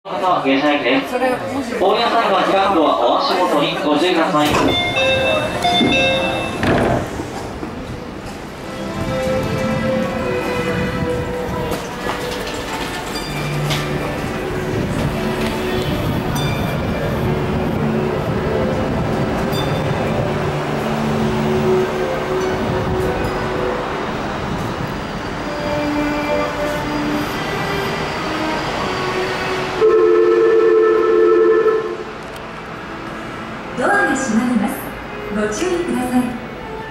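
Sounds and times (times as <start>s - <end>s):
station platform noise: 0.1s - 36.9s
steady musical tones: 7.2s - 36.9s
two-note signal tone: 29.8s - 32.1s.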